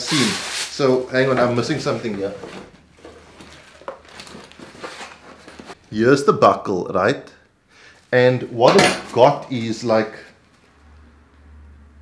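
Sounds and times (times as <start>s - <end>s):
cardboard and plastic rustling: 0.4s - 5.8s.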